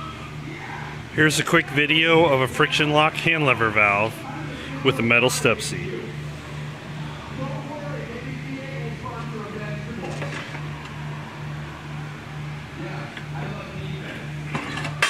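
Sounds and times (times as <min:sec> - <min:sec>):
low pulsing hum: 0:00.0 - 0:15.0.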